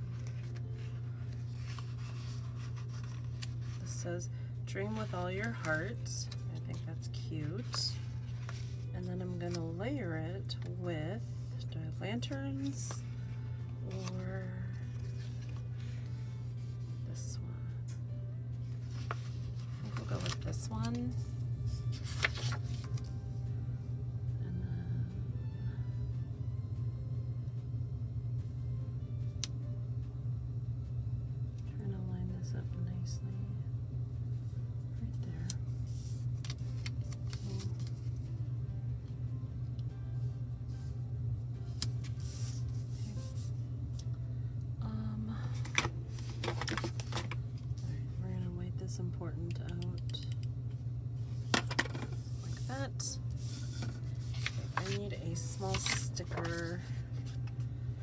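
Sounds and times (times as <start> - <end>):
stickers rustling and crinkling: 0.0 - 4.0, 4.8 - 9.8, 18.7 - 23.1, 35.4 - 38.3, 45.5 - 48.0, 51.4 - 57.7
low steady hum: 0.0 - 58.0.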